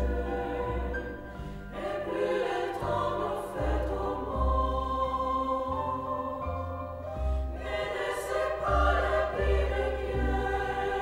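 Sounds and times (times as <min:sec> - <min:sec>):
women's choir singing: 0:00.0 - 0:11.0.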